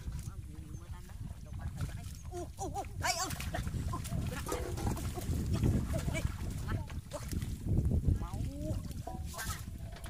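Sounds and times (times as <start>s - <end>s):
splashing in muddy water: 0.0s - 10.0s
wind rumbling on microphone: 0.0s - 10.0s.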